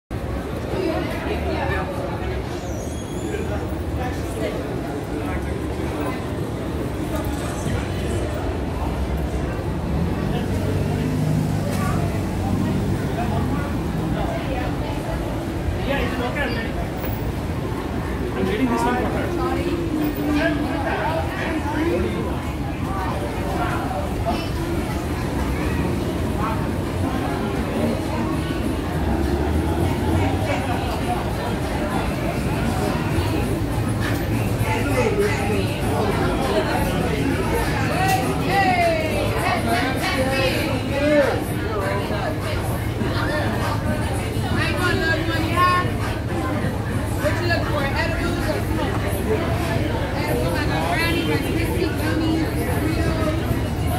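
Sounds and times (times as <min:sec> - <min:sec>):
crowd chatter: 0:00.1 - 0:53.9
people talking: 0:00.1 - 0:53.9
brief high-pitched squeal: 0:02.5 - 0:03.5
low rumble of passing traffic: 0:03.4 - 0:53.9.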